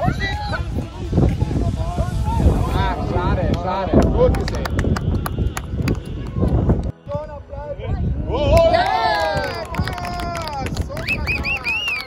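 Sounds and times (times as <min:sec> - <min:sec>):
steady low rumble: 0:00.0 - 0:08.7.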